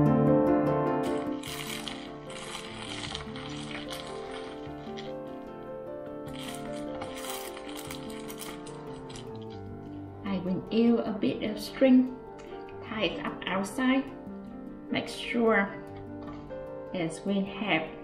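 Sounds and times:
background music sustained notes: 0:00.0 - 0:18.0
aluminium foil crinkling: 0:01.0 - 0:05.5, 0:06.2 - 0:10.0.

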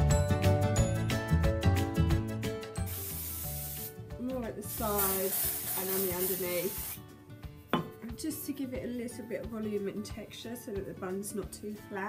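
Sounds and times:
background music: 0:00.0 - 0:12.0
aerosol spray hiss: 0:02.8 - 0:04.0, 0:04.6 - 0:07.0.

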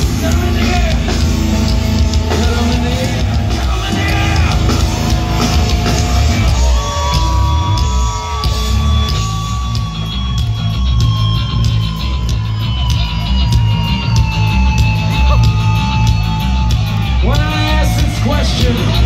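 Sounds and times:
live heavy metal band: 0:00.0 - 0:19.0.

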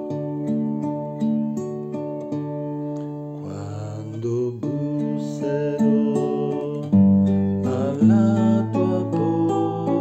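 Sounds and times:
fingerstyle classical guitar: 0:00.0 - 0:10.0.

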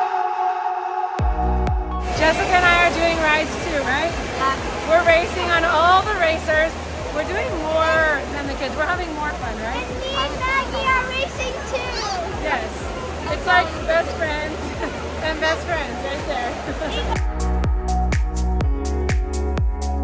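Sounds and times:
people talking: 0:02.1 - 0:17.2
background chatter: 0:02.1 - 0:17.5.

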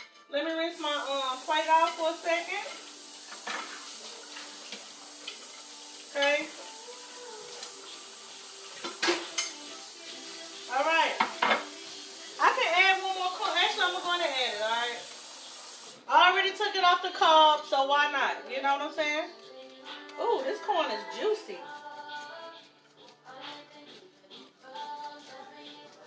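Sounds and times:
plate and utensils clinking: 0:02.7 - 0:04.5, 0:08.8 - 0:09.6, 0:11.2 - 0:11.7.

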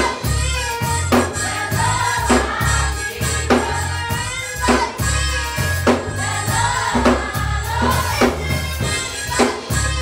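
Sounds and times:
bass notes: 0:00.0 - 0:10.0
choir singing: 0:00.0 - 0:10.0
drum hits: 0:00.0 - 0:10.0.

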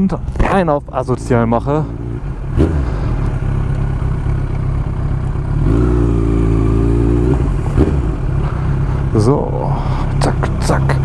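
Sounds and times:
motorcycle engine at low revs: 0:00.0 - 0:11.0.

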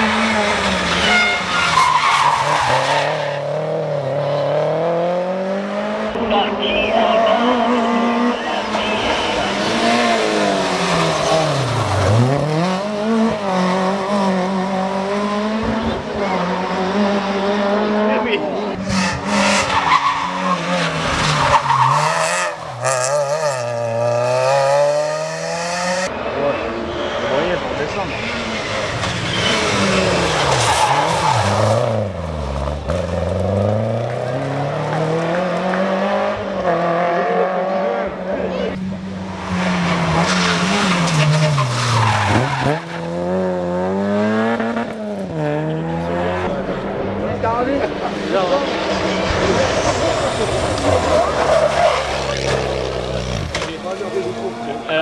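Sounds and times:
rally car engines revving: 0:00.0 - 0:55.0.

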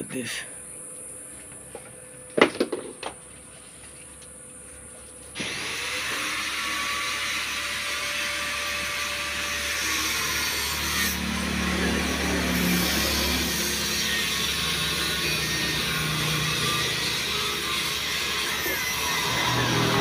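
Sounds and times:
power tool running: 0:05.4 - 0:20.0.

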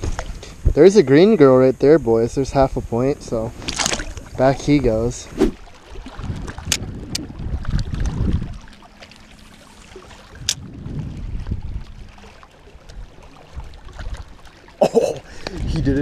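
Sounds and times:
waves lapping on rocky shore: 0:03.5 - 0:16.0
low microphone rumble: 0:10.3 - 0:12.2.

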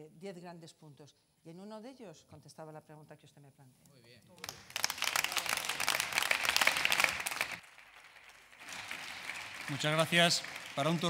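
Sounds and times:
small group applauding: 0:04.4 - 0:11.0.

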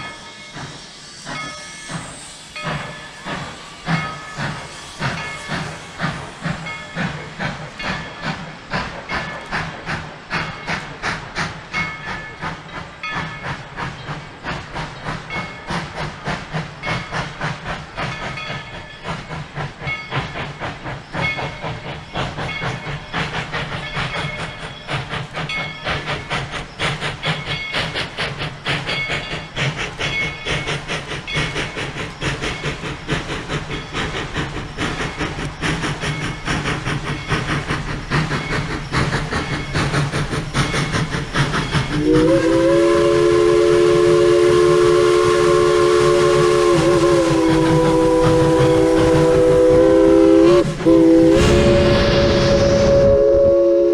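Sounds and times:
steam hissing: 0:00.0 - 0:53.9
steam locomotive chuffing: 0:00.0 - 0:53.9.

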